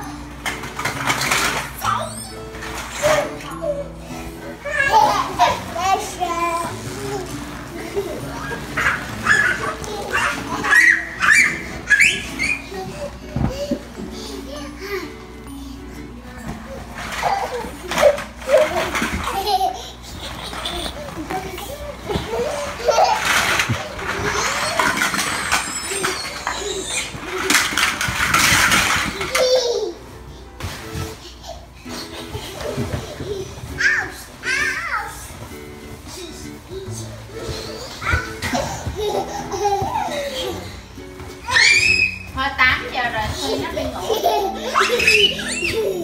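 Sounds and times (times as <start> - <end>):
children calling and squealing: 1.7 - 30.1, 31.4 - 35.4, 36.0 - 42.4, 43.3 - 46.0
young children vocalizing: 1.8 - 2.6, 8.2 - 15.2, 36.0 - 42.3, 44.4 - 46.0
vinyl rubbing and crumpling: 5.1 - 13.5, 16.5 - 31.3.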